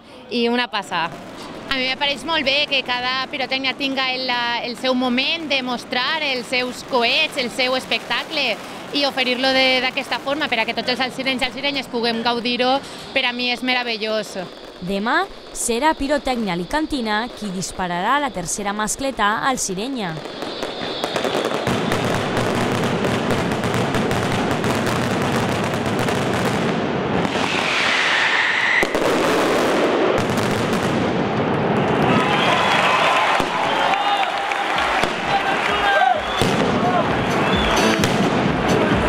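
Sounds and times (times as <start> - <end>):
firecracker detonations and crackling: 0.8 - 39.0
whistling firework: 1.1 - 39.0.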